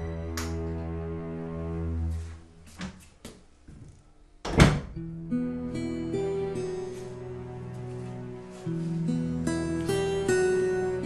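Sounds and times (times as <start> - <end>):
wooden door shutting: 4.4 - 5.0
soft plucked guitar music: 5.0 - 11.0.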